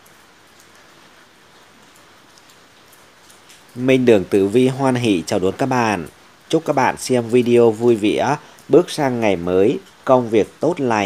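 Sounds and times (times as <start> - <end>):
raindrop ticks: 0.0 - 11.0
steady rain hiss: 0.0 - 11.0.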